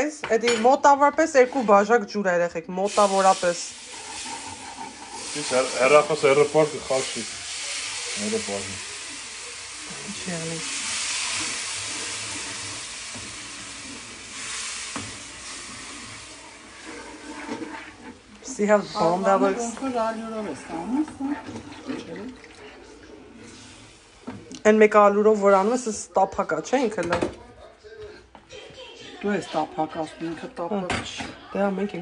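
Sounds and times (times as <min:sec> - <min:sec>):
liquid sizzling in hot pan: 0:02.8 - 0:26.0
wooden spoon stirring: 0:03.7 - 0:07.2, 0:10.7 - 0:24.6.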